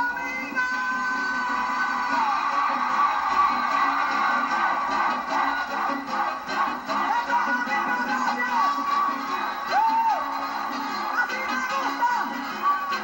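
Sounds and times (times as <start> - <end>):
live concert music: 0.0 - 13.0
stadium crowd cheering: 0.0 - 13.0.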